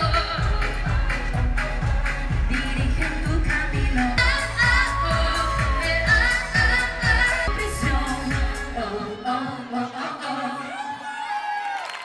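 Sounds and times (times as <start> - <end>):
woman singing into microphone: 0.0 - 11.1.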